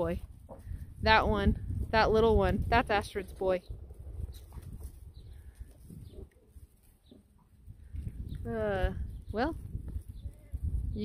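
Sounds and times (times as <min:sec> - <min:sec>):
low rumble: 0:00.0 - 0:06.3.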